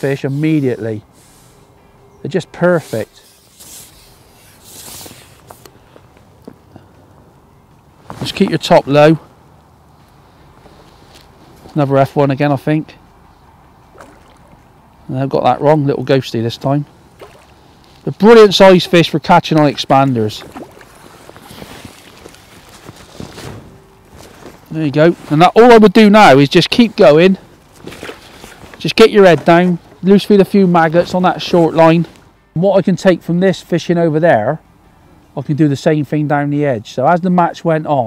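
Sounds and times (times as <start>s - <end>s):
soft rustle: 2.7s - 7.1s, 8.0s - 12.0s, 19.9s - 25.6s, 27.4s - 30.1s
fishing tackle knocks and rustles: 19.6s - 24.7s, 27.7s - 30.0s.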